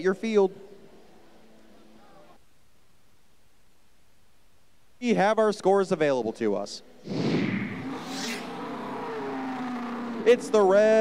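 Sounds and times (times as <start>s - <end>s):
race car engine: 7.0s - 11.0s.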